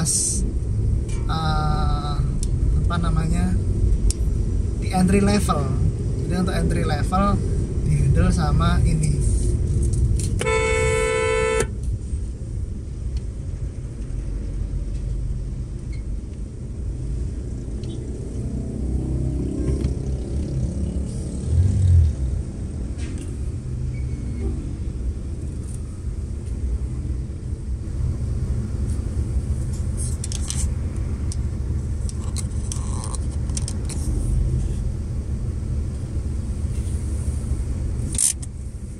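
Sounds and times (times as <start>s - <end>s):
low rumble: 0.0s - 10.4s, 11.8s - 38.9s
car engine and road rumble: 0.0s - 38.9s
car horn blast: 10.4s - 11.8s.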